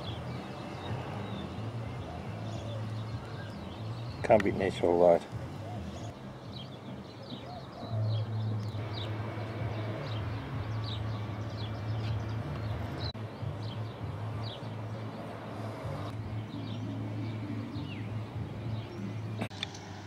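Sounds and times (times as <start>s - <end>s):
small birds chirping: 0.0s - 20.0s.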